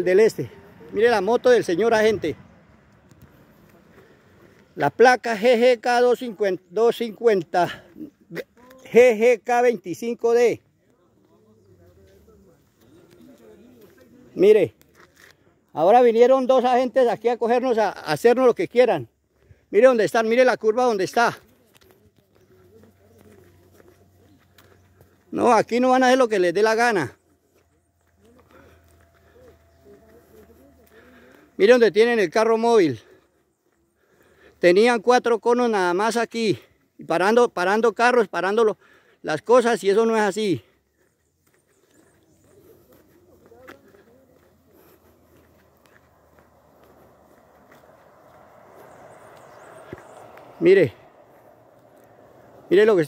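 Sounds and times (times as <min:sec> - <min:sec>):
footsteps on paved road: 0:00.0 - 0:05.3, 0:10.6 - 0:15.8, 0:18.9 - 0:34.6, 0:40.0 - 0:53.0
distant voices: 0:00.0 - 0:10.0, 0:10.6 - 0:35.2, 0:38.8 - 0:53.0
distant voice: 0:27.0 - 0:32.1, 0:41.7 - 0:53.0.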